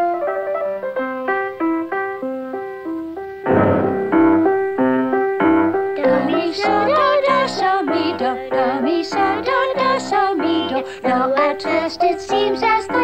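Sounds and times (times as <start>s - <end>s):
piano playing runs and chords: 0.0s - 13.0s.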